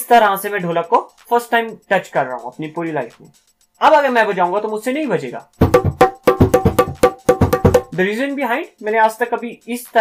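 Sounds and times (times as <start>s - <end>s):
hand drum played by hand: 5.6s - 8.0s.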